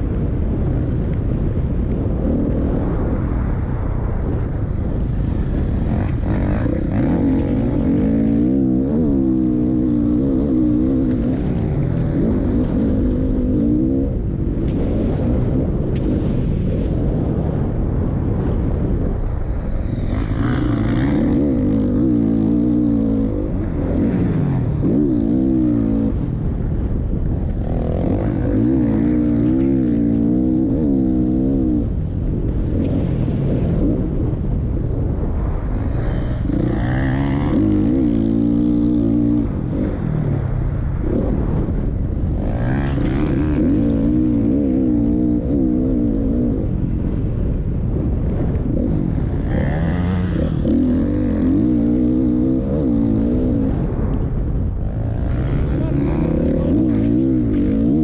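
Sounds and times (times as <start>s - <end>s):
motorbike engine revving: 4.7s - 58.0s.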